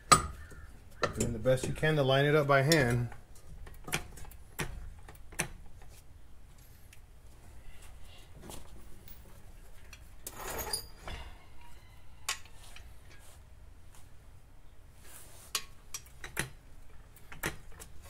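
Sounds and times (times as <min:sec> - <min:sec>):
metallic clicks and knocks: 0:00.0 - 0:01.9, 0:15.6 - 0:18.0.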